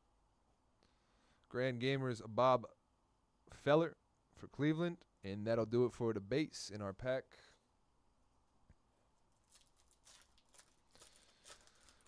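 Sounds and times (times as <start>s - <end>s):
foil wrapper crinkling and tearing: 9.2s - 12.0s.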